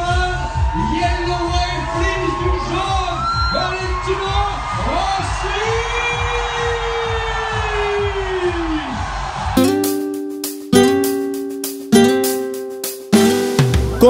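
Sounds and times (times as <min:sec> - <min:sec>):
crowd noise: 0:00.0 - 0:14.0
acoustic guitar chords strummed: 0:09.6 - 0:14.0.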